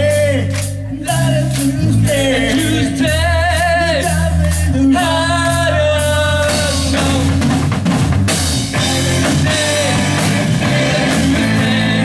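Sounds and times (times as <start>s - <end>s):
man singing with vibrato: 0.0s - 7.5s, 8.7s - 12.0s
rock band playing: 0.0s - 12.0s.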